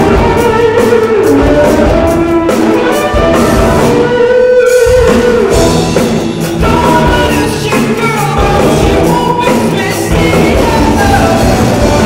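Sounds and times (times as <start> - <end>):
drum kit: 0.0 - 12.0
electric guitars: 0.0 - 12.0.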